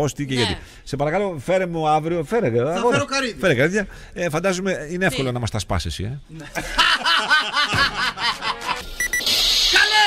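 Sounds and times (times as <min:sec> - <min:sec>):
person laughing: 0:06.4 - 0:08.8.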